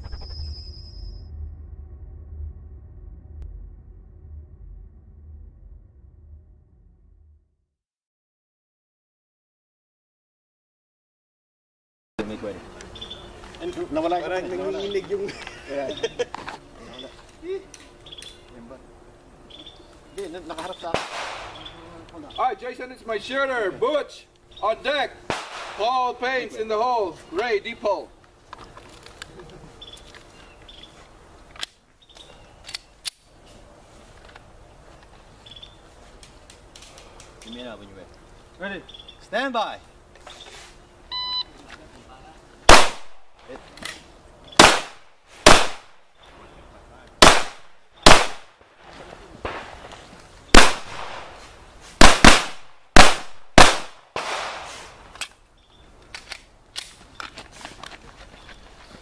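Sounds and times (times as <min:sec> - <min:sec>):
high bird chirps: 0:00.0 - 0:01.3, 0:12.9 - 0:13.3, 0:35.4 - 0:35.8, 0:38.8 - 0:39.3
pistol shots: 0:20.9 - 0:21.7, 0:25.3 - 0:25.9, 0:42.7 - 0:43.2, 0:44.6 - 0:46.0, 0:47.2 - 0:48.5, 0:50.6 - 0:51.3, 0:52.0 - 0:54.8.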